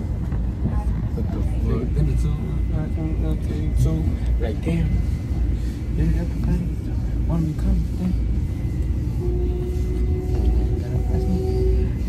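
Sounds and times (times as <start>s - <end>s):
train rumbling: 0.0s - 12.0s.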